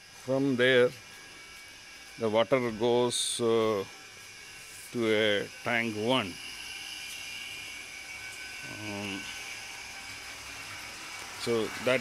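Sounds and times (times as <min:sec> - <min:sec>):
faint high whine: 0:00.0 - 0:12.0
motor humming: 0:00.0 - 0:12.0.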